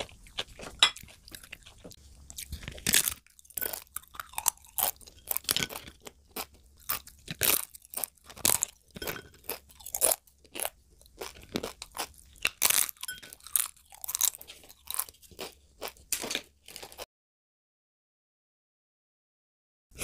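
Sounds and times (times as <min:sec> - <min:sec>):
chewing crunchy food: 0:00.0 - 0:17.1.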